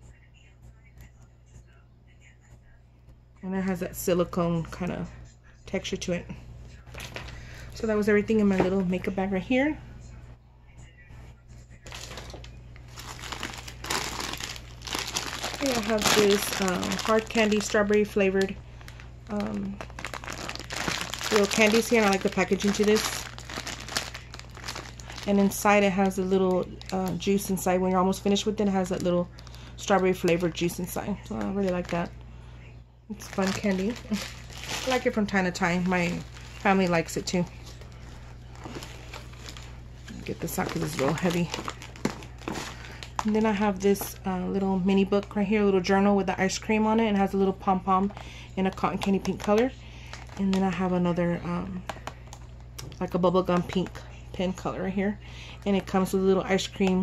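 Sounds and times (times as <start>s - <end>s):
low steady hum: 0.0s - 57.0s
crinkly plastic packaging handled: 6.9s - 7.6s, 11.8s - 27.7s, 28.7s - 32.1s, 33.2s - 44.2s, 48.0s - 50.9s, 51.8s - 54.0s.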